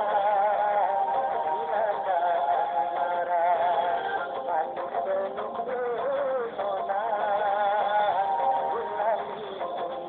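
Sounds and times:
man singing with vibrato: 0.0 - 10.0
pop music: 0.0 - 10.0.

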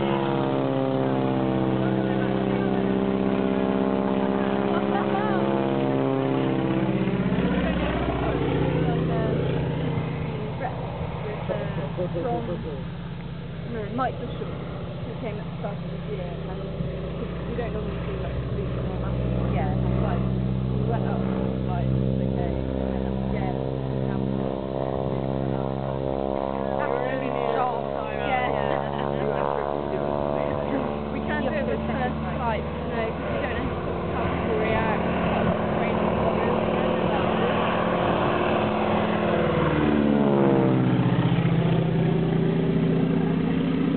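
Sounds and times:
plane engine humming overhead: 0.0 - 43.9.

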